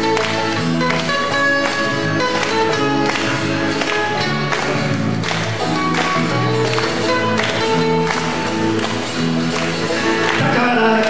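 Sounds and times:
banjo: 0.0s - 11.0s
electric bass: 0.0s - 11.0s
hand percussion: 0.0s - 11.0s
strummed acoustic guitars: 0.0s - 11.0s.

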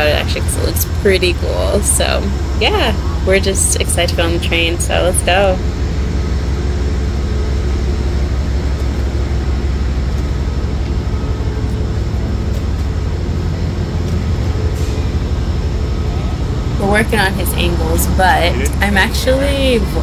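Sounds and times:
faint even hums: 0.0s - 20.0s
steady low rumble: 0.0s - 20.0s.

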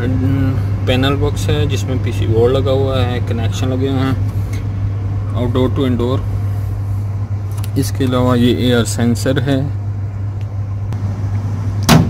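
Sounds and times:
air conditioner blower humming: 0.0s - 12.0s.

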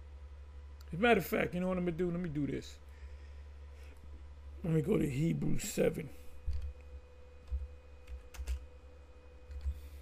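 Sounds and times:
low steady hum: 0.0s - 10.0s
computer keyboard typing: 7.4s - 8.7s, 9.5s - 9.8s.

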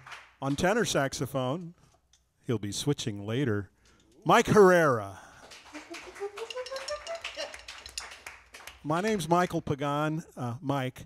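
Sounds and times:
light applause: 5.3s - 9.3s.

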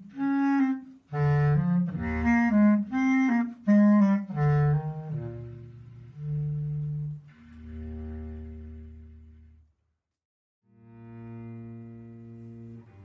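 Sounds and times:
bass clarinet: 0.0s - 9.7s, 10.7s - 13.0s
cello: 0.0s - 9.8s, 10.7s - 13.0s.

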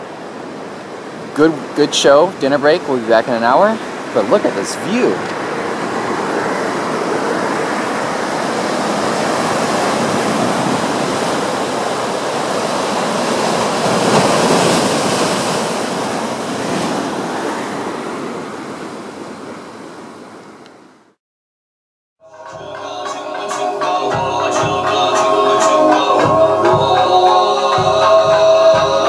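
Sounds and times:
surf breaking over rocks: 0.0s - 19.8s.

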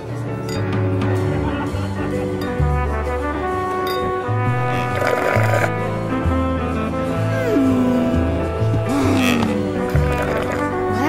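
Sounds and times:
cartoon music with bass and horns: 0.3s - 11.0s.

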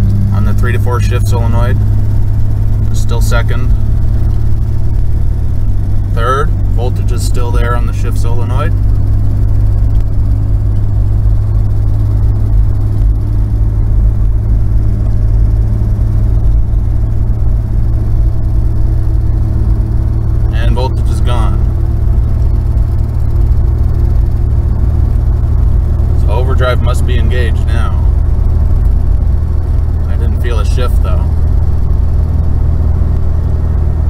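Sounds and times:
car engine drone: 0.0s - 34.0s
road noise: 0.0s - 34.0s.

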